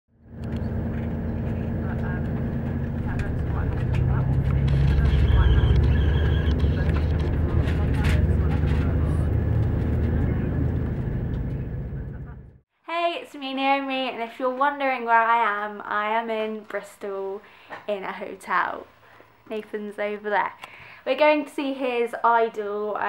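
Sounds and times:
train rumbling: 0:00.3 - 0:12.6
people's voices: 0:01.4 - 0:12.5.

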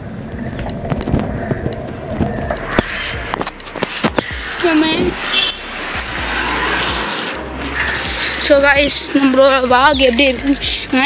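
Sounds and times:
motor scooter passing: 0:00.0 - 0:11.0
street traffic noise: 0:00.0 - 0:11.0.

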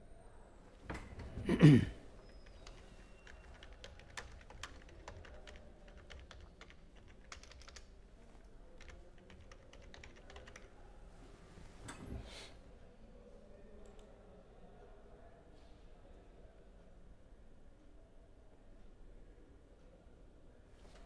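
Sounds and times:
faint keyboard typing: 0:01.0 - 0:10.9, 0:13.8 - 0:14.2.

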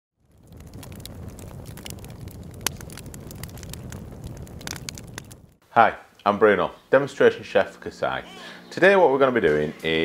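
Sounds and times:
fire popping and snapping: 0:00.2 - 0:05.6
fire crackling: 0:00.2 - 0:07.3.

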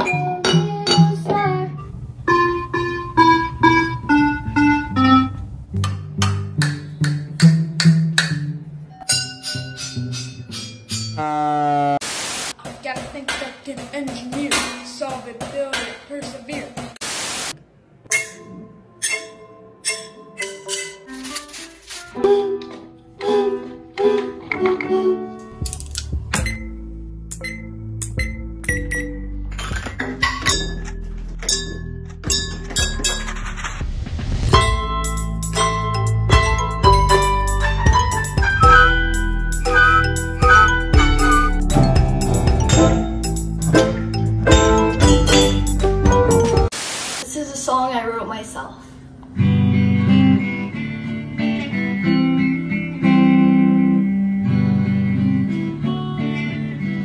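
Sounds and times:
electronic piano notes: 0:01.8 - 0:06.2, 0:34.6 - 0:46.7
bursts of hiss: 0:12.0 - 0:12.6, 0:17.0 - 0:17.6, 0:46.7 - 0:47.4
children singing: 0:22.2 - 0:25.4
bucket drumming: 0:40.0 - 0:46.7.

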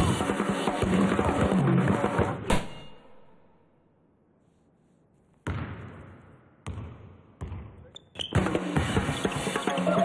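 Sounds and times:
basketball bouncing with echo: 0:05.4 - 0:09.6.

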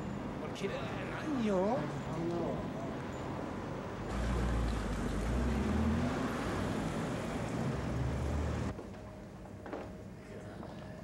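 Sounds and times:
passing cars: 0:03.6 - 0:08.7.

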